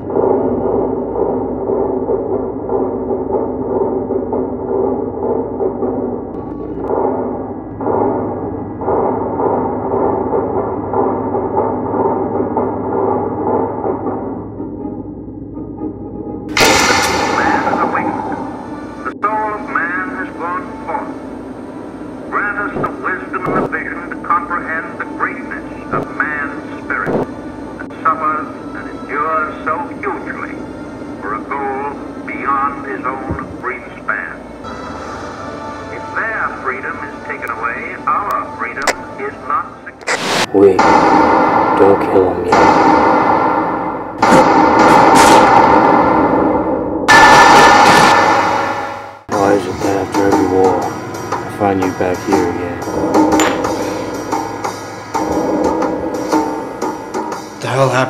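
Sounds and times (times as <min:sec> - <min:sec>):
steady drone: 0:00.0 - 0:39.0, 0:40.1 - 0:57.6
loud ringing bangs: 0:16.5 - 0:19.2, 0:40.6 - 0:57.6
man speaking on old recording: 0:36.4 - 0:41.0, 0:41.8 - 0:42.8, 0:49.3 - 0:53.0.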